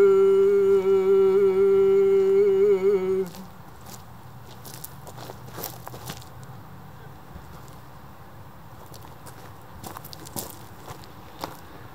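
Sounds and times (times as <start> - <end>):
man singing long note: 0.0 - 3.4.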